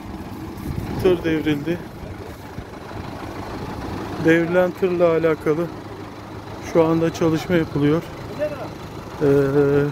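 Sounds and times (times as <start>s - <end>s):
tractor engine idling: 0.0s - 9.9s.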